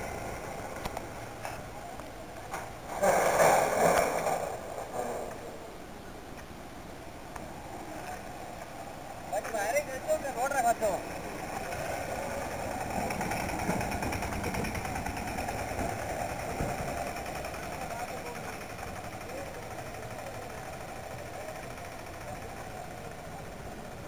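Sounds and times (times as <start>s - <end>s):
vehicle engine and road rumble: 0.0s - 24.0s
rattle: 11.1s - 24.0s.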